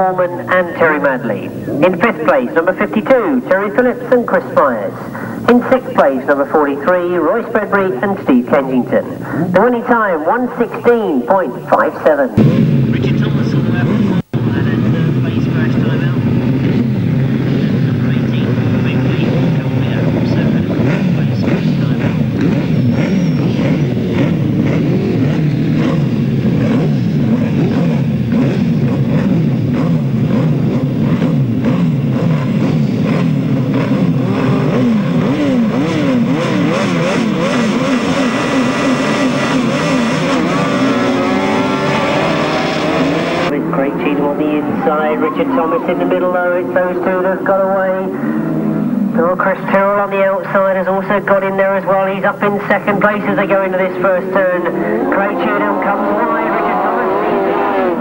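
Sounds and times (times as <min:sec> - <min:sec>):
sidecar engines revving: 0:00.0 - 0:58.0.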